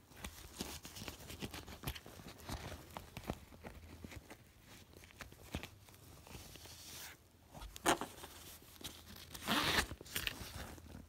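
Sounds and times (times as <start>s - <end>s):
backpack zipper rasp: 9.4s - 9.9s.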